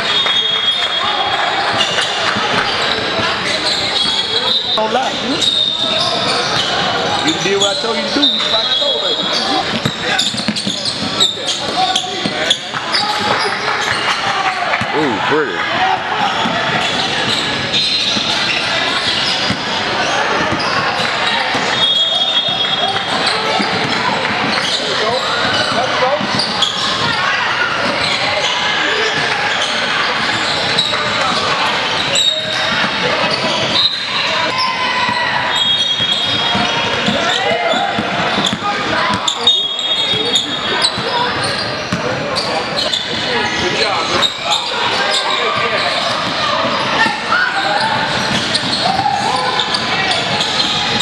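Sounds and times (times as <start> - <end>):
players and spectators voices: 0.0 - 51.0
shoes squeaking on floor: 0.0 - 51.0
basketballs bouncing on court: 1.6 - 51.0.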